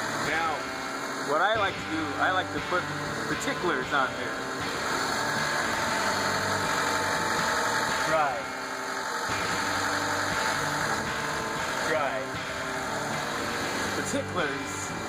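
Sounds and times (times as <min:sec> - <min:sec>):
car engine idling: 0:00.0 - 0:15.0.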